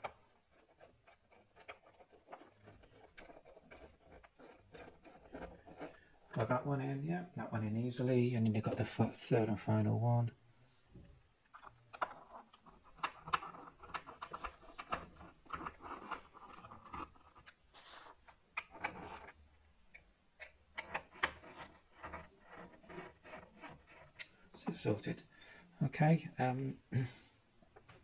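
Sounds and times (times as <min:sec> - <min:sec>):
screwdriver clicking and scratching: 0:00.0 - 0:06.0, 0:11.5 - 0:24.4.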